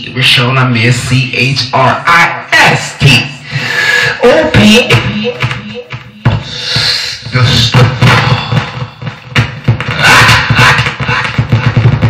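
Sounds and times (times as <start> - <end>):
person beatboxing: 3.5 - 12.0.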